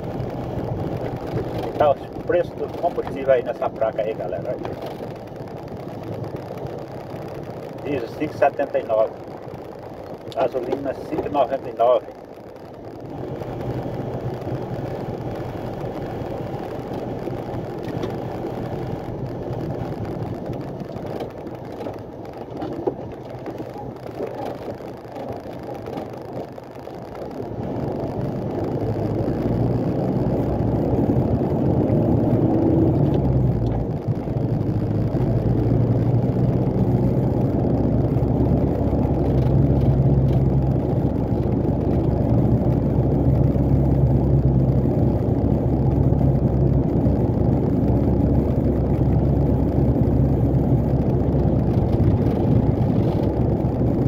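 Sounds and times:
diesel truck engine running: 0.0s - 54.0s.

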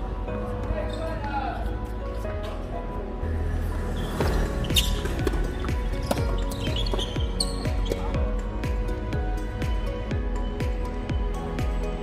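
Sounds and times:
tennis ball bouncing: 4.7s - 8.1s.

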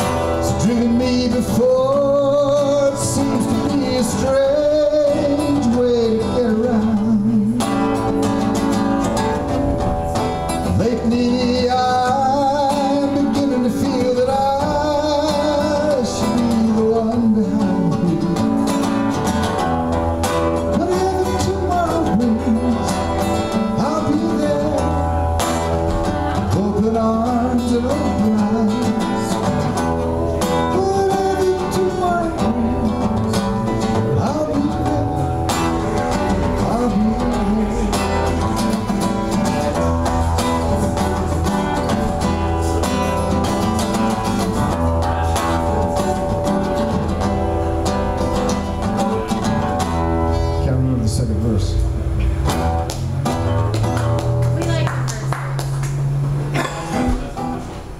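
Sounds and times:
man singing: 0.0s - 19.2s, 20.4s - 47.3s
acoustic guitar: 0.0s - 57.9s.

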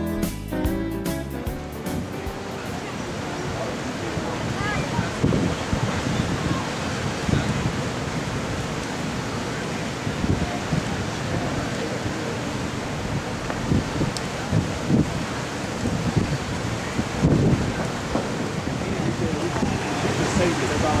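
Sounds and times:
storm surf breaking: 1.6s - 21.0s
wind buffeting microphone: 2.0s - 21.0s.

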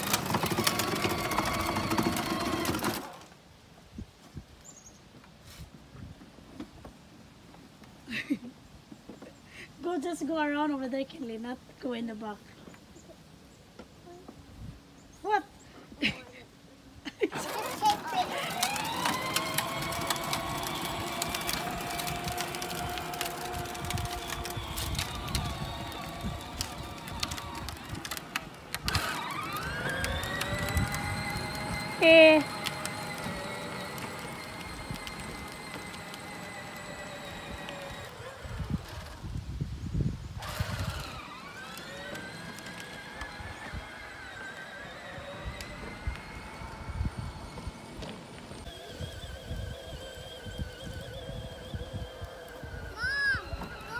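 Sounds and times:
electric toy motor whining: 0.0s - 3.2s, 17.3s - 39.4s, 40.4s - 53.9s
child laughing: 17.0s - 18.7s, 53.0s - 53.9s.

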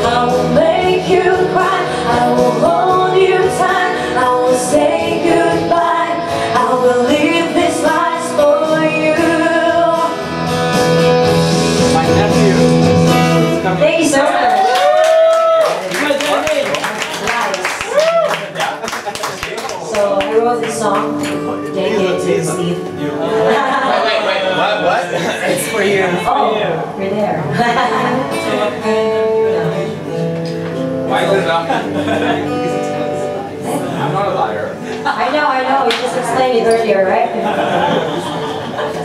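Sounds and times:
person singing: 0.0s - 10.4s
acoustic guitar chords: 0.0s - 14.2s, 19.8s - 39.0s.

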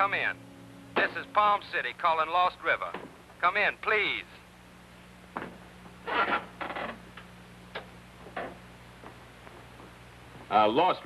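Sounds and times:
steady low hum: 0.0s - 11.0s
radio set clicks: 6.6s - 10.0s.

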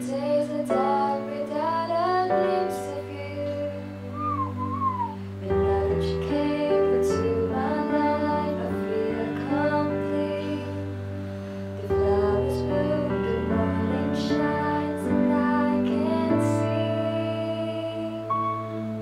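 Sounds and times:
woman singing into microphone: 0.0s - 11.1s, 11.8s - 19.0s
backing track of held chords: 0.0s - 19.0s.

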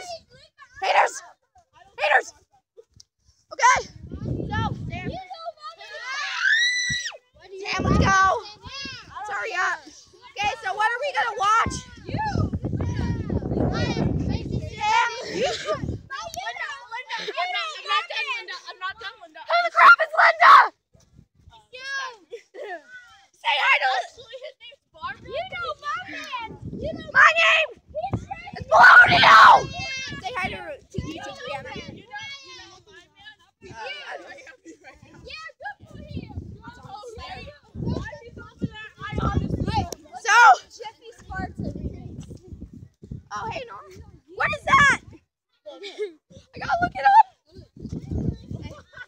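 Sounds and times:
loud yell: 5.8s - 7.2s, 19.6s - 20.7s, 28.6s - 30.2s
child screaming: 5.9s - 7.2s, 28.7s - 29.9s
boy's voice: 7.4s - 20.4s, 21.8s - 42.5s.

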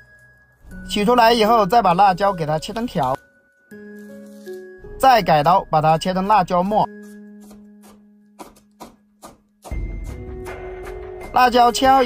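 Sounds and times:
cleaver chopping on wooden board: 7.0s - 9.9s.

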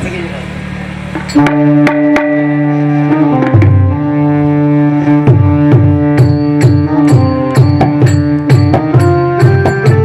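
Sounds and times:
hand drum strokes: 1.1s - 10.0s
electronic keyboard chord: 1.2s - 10.0s.

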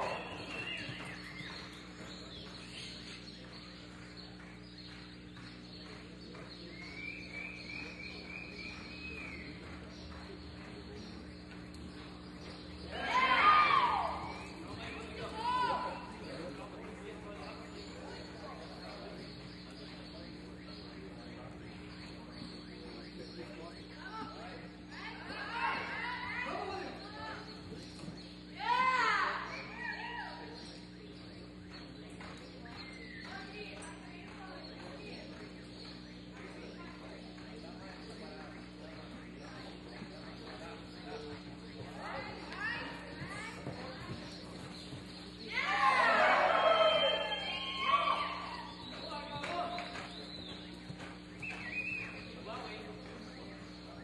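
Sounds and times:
horse hoofbeats on sand: 0.0s - 25.1s, 30.6s - 53.9s.

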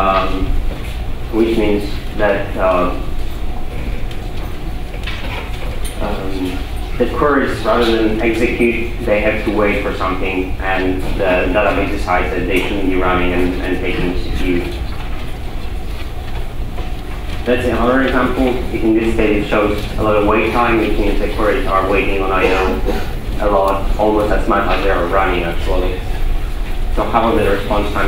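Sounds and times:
low room rumble: 0.0s - 28.0s.

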